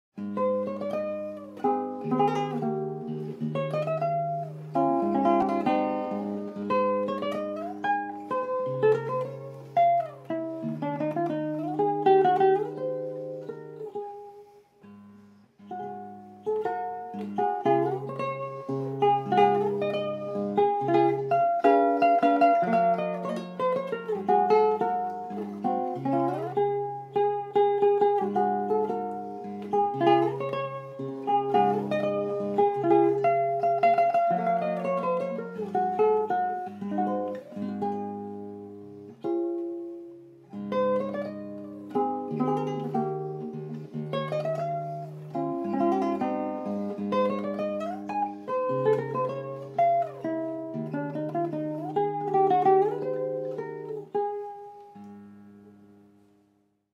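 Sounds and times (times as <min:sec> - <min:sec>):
fingerpicked guitar: 0:00.1 - 0:56.9.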